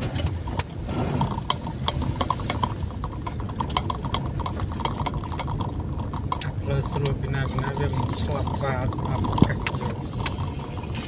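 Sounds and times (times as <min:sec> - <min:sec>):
engine and tyres rumbling on wet road: 0:00.0 - 0:11.0
raindrops ticking on windscreen: 0:00.0 - 0:11.0.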